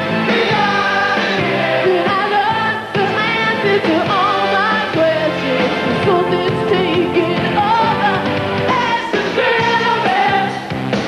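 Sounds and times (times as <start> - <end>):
keyboards: 0.0 - 11.0
backing vocals: 0.2 - 10.7
woman singing lead: 0.3 - 10.7.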